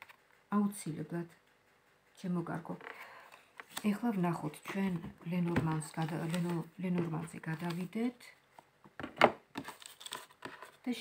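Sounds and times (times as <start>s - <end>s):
cards clicking and tapping: 2.8s - 8.0s, 8.6s - 10.8s.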